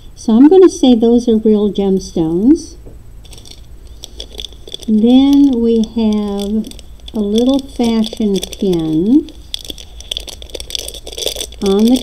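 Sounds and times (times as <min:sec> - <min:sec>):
beads and metal jewelry clicking: 0:03.2 - 0:12.0.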